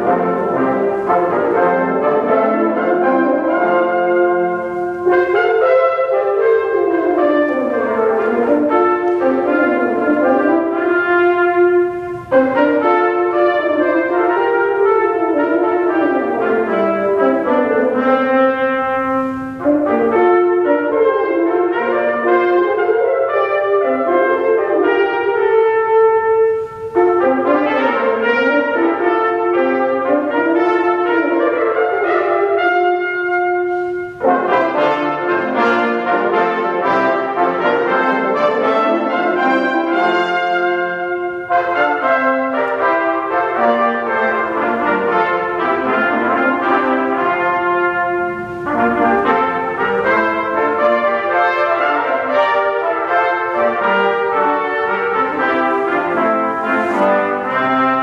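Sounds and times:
brass quintet playing: 0.0 - 58.0.

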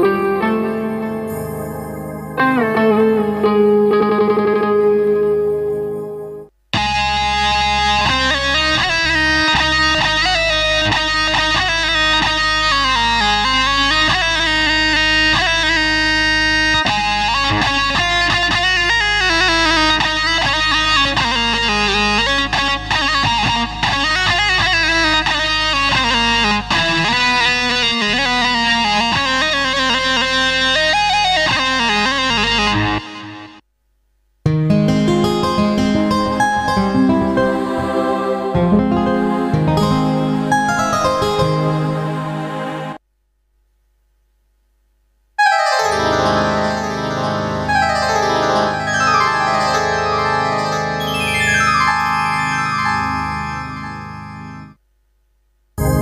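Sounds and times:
synthesizer plucked-string melody: 0.0 - 33.0, 34.4 - 43.0, 45.4 - 54.8.

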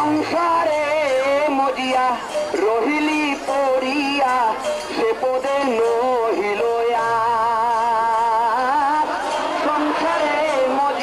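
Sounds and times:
devotional singing: 0.0 - 11.0
musical accompaniment: 0.0 - 11.0.

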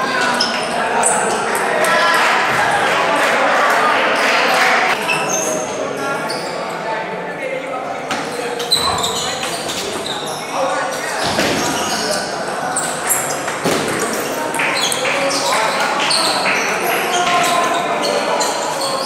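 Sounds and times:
spectators chattering: 0.0 - 19.0.

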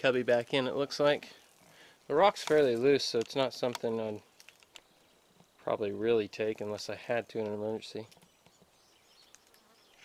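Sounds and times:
small ticks: 1.4 - 5.6, 7.3 - 10.0
faint insect buzz: 8.7 - 10.0.

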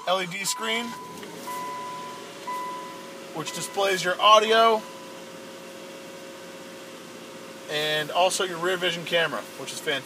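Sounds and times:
dashboard warning chime dinging: 0.0 - 5.6.

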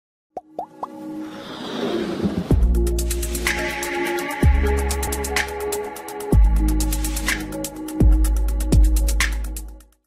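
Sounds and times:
electronic music riser: 1.2 - 7.4.

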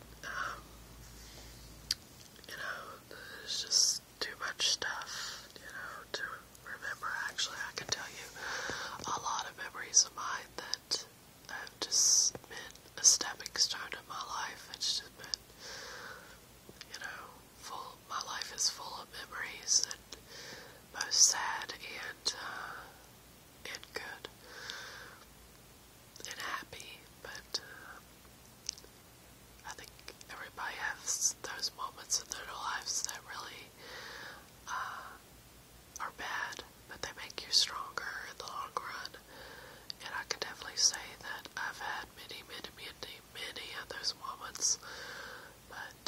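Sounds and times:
person whispering: 0.2 - 0.8, 2.4 - 15.4, 16.8 - 20.2, 21.0 - 22.9, 23.7 - 24.3, 26.2 - 28.0, 29.6 - 33.7, 36.0 - 39.2, 39.9 - 44.8, 45.7 - 46.0.

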